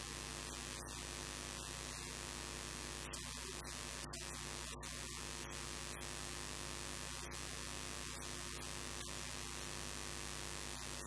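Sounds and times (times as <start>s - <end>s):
electrical mains hum: 0.0s - 11.0s
loud static hiss: 0.0s - 11.0s.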